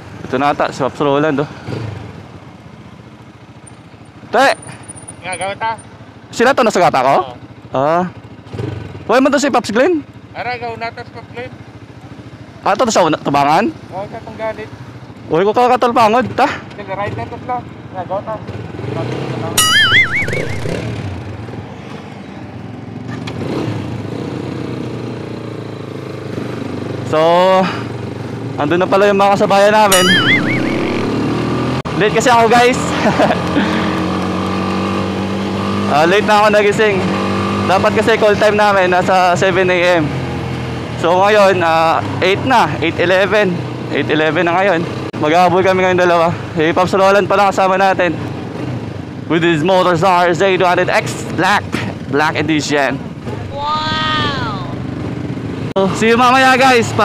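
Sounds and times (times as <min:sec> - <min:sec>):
motorcycle engine running: 0:00.0 - 0:57.0
road noise: 0:00.0 - 0:57.0
wavering tone: 0:19.6 - 0:20.9, 0:29.9 - 0:31.2.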